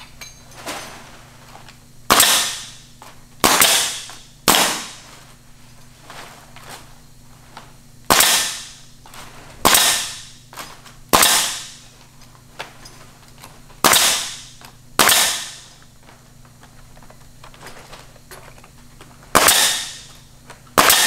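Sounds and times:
nail gun firing: 0:02.1 - 0:02.8, 0:03.4 - 0:05.0, 0:08.1 - 0:08.8, 0:09.6 - 0:10.4, 0:11.1 - 0:11.8, 0:13.8 - 0:15.7, 0:19.3 - 0:20.1, 0:20.8 - 0:21.0.

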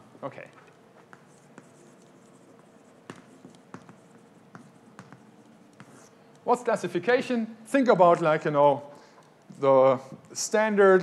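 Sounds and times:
chalk scratching on blackboard: 0:01.1 - 0:06.2
light chalk taps: 0:01.1 - 0:06.5.

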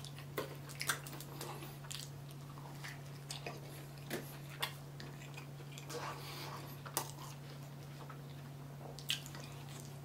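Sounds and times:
close-miked chewing: 0:00.0 - 0:10.0
faint low hum: 0:00.0 - 0:10.0.

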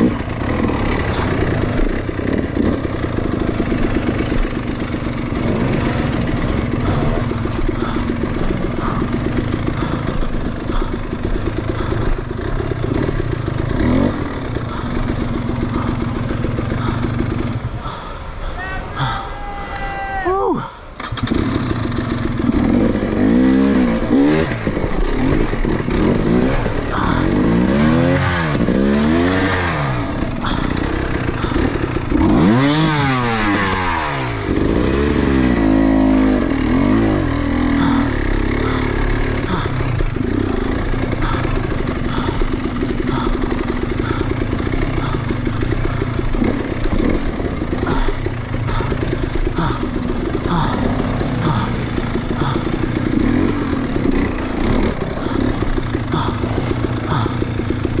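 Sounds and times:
dirt bike engine revving: 0:00.0 - 0:19.3, 0:20.1 - 0:58.0.

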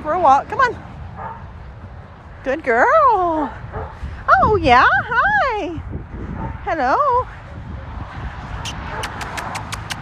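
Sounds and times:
light sharp clicks: 0:09.0 - 0:10.0.

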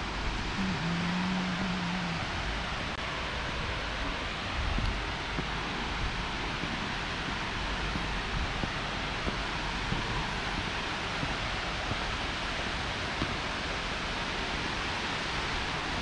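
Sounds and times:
waterfall roaring: 0:00.0 - 0:16.0.

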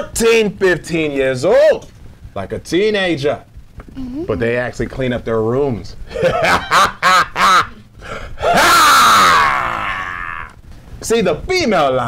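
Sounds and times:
man's strained vocal cry: 0:08.4 - 0:10.6.

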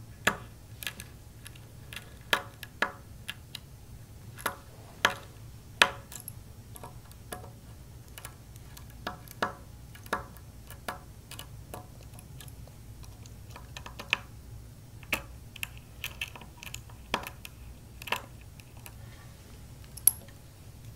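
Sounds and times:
low steady hum: 0:00.0 - 0:20.9.

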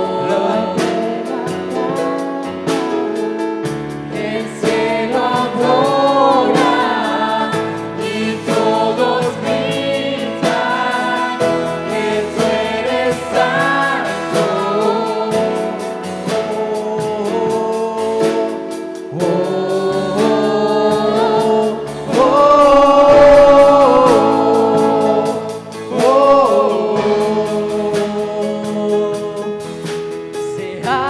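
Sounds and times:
person singing: 0:00.0 - 0:03.5, 0:04.1 - 0:31.0
drum kit steady beat: 0:00.0 - 0:31.0
keyboard: 0:00.0 - 0:31.0.

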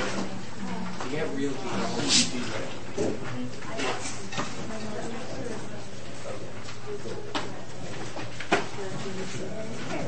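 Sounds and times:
faint voices murmuring: 0:00.0 - 0:10.0.

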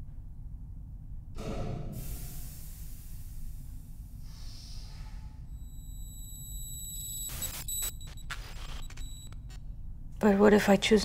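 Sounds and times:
low drone film score: 0:00.0 - 0:10.1
high electronic tones: 0:05.6 - 0:09.4
short bursts of noise: 0:07.2 - 0:09.6.

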